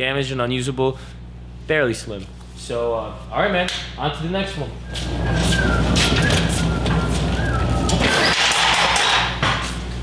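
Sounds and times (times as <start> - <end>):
pallet jack rolling on concrete: 5.0 - 9.4.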